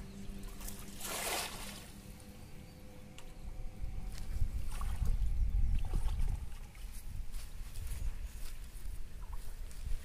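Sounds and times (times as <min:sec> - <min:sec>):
low rumble: 0:00.0 - 0:10.0
water swishing: 0:00.3 - 0:02.4.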